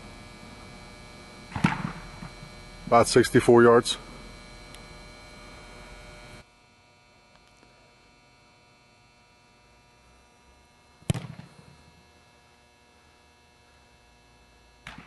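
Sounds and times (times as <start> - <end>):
steady hum: 0.0 - 15.0
football kicked off a tee: 1.5 - 2.4, 11.0 - 11.7.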